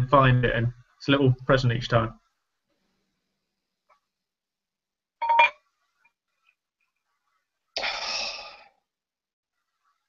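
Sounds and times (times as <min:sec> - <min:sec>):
glass bottle clinking against glass: 0:05.2 - 0:05.6.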